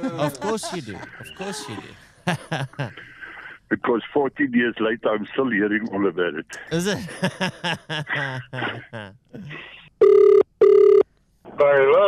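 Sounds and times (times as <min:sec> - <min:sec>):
telephone ringback tone: 0:10.0 - 0:11.0.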